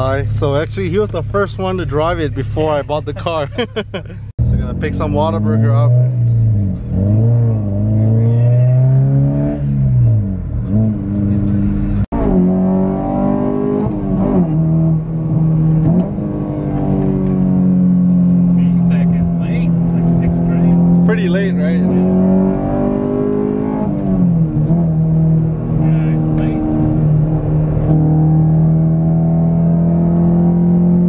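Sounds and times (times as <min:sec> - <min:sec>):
car engine accelerating through gears: 0:04.4 - 0:31.0.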